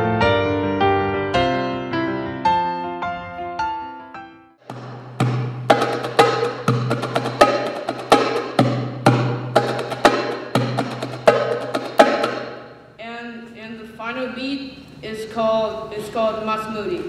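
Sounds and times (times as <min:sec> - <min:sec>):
goblet drum played by hand: 0:04.7 - 0:12.7.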